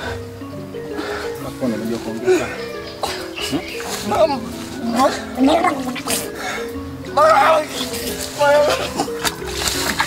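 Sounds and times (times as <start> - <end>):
background music: 0.0 - 10.0
men talking: 1.2 - 6.3.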